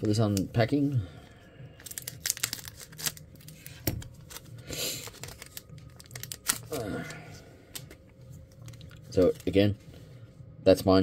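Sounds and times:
foil pack rustling: 0:01.8 - 0:06.9
foil wrapper crinkling: 0:01.8 - 0:06.9.

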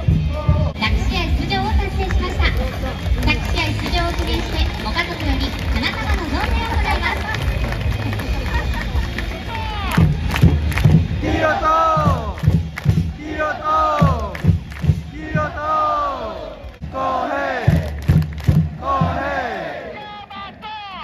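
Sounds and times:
drum beats: 0:00.0 - 0:21.0
crowd chanting in unison: 0:11.0 - 0:20.0.

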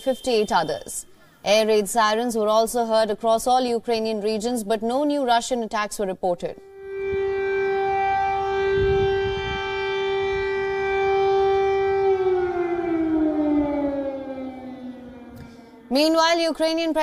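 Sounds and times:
air raid siren: 0:06.6 - 0:17.0.

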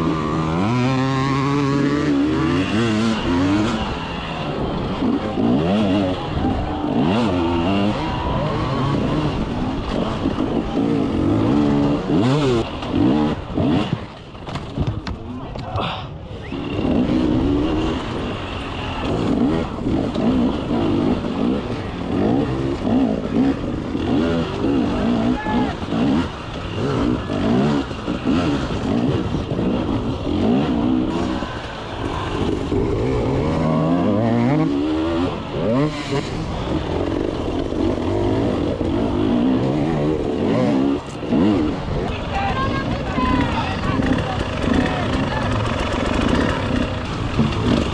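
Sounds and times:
motorcycle engine revving: 0:00.0 - 0:15.1, 0:16.4 - 0:47.9.

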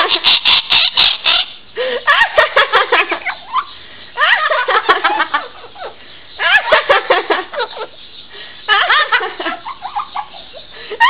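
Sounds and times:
parrot shrill calls: 0:00.1 - 0:01.6.

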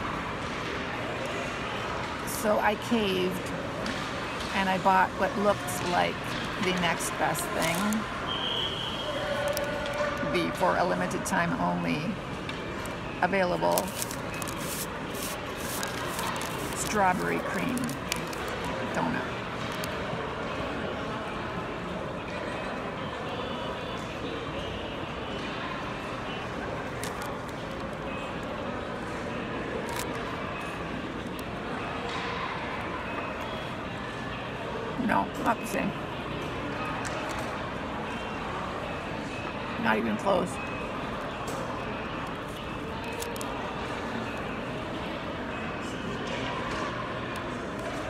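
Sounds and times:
ventilation hum: 0:00.0 - 0:22.2
distant crowd noise: 0:00.0 - 0:48.0
indoor hall hubbub: 0:00.0 - 0:48.0.

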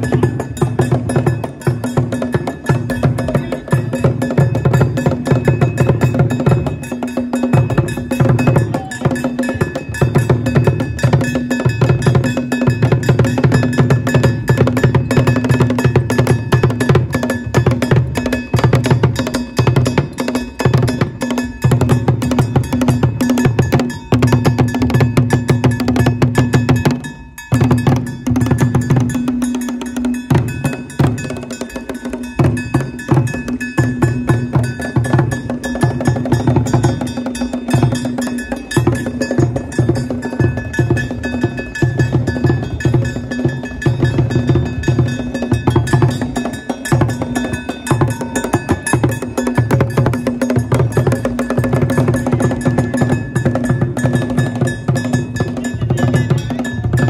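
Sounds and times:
fast percussion rhythm: 0:00.0 - 0:57.0
held ringing tone: 0:00.0 - 0:57.0.

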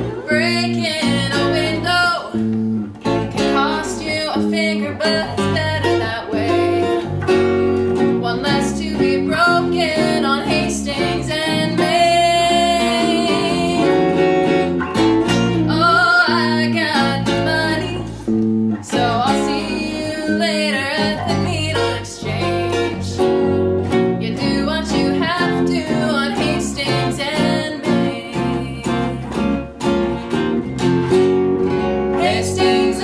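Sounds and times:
woman singing: 0:00.0 - 0:02.6, 0:03.4 - 0:14.7, 0:15.4 - 0:18.2, 0:18.8 - 0:29.6, 0:32.1 - 0:33.0
electric bass: 0:00.0 - 0:33.0
electric guitar: 0:00.0 - 0:33.0.

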